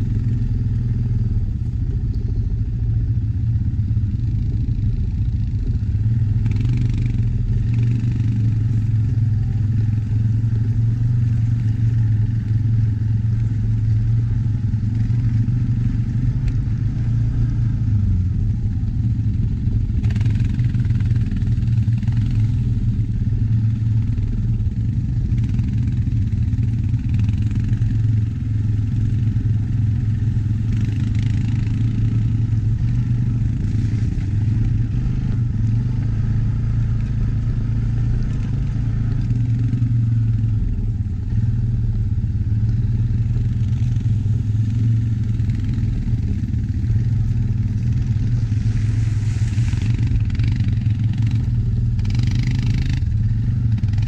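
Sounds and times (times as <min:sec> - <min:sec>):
atv engine running: 0:00.0 - 0:54.0.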